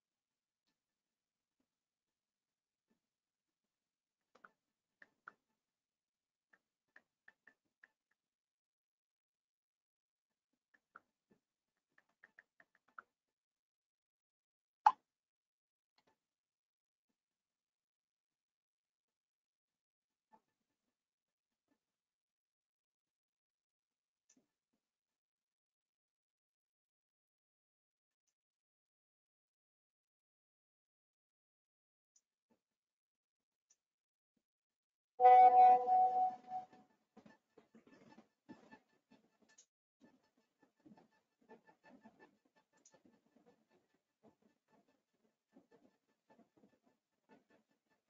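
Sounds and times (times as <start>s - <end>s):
held two-pitch tone: 35.2s - 36.7s.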